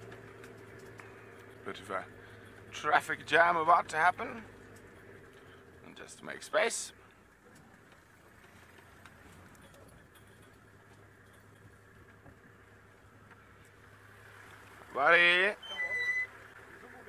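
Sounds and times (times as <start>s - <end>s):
vehicle engine humming: 0.0s - 17.0s.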